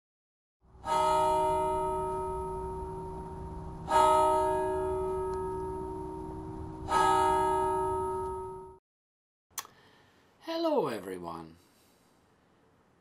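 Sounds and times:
bell ringing: 0:00.8 - 0:08.8.

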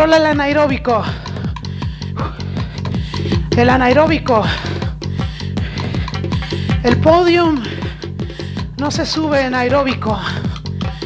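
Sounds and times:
music with fast beat: 0:00.0 - 0:11.0.

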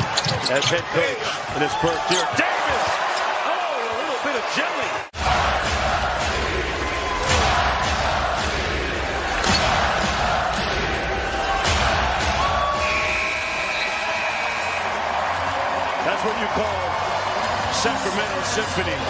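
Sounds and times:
arena crowd noise: 0:00.0 - 0:19.0.

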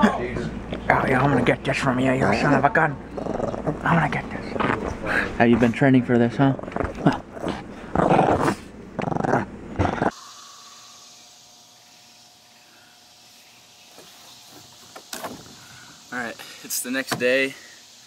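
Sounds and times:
faint hum: 0:00.0 - 0:18.0
small dog growling: 0:02.2 - 0:04.9, 0:06.6 - 0:10.2.

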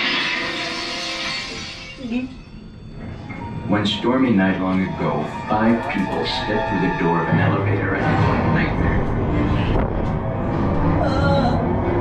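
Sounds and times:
glass shattering sound effect: 0:00.0 - 0:02.2
eerie music: 0:00.0 - 0:12.0.

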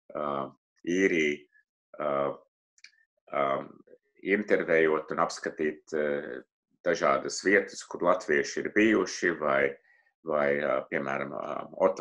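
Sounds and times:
man's voice: 0:00.1 - 0:01.4, 0:02.0 - 0:02.4, 0:03.4 - 0:03.7, 0:04.3 - 0:09.7, 0:10.3 - 0:12.0.

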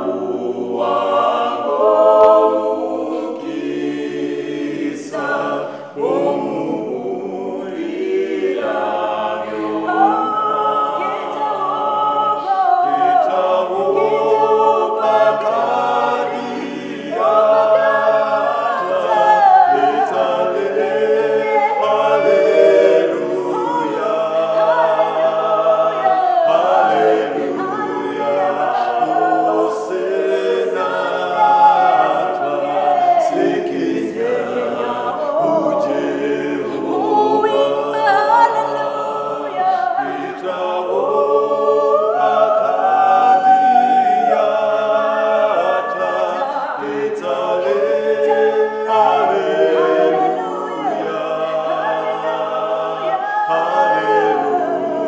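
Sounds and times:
a cappella group singing in harmony: 0:00.0 - 0:55.0.

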